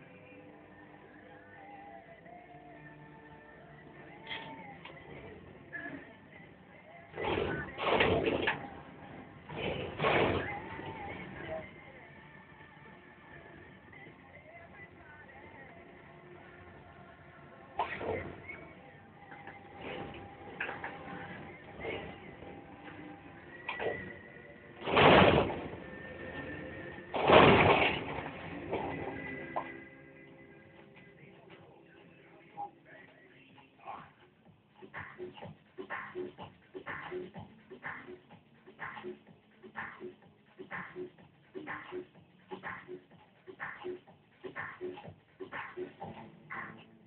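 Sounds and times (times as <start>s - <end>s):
heavy metallic bangs: 24.8s - 29.3s.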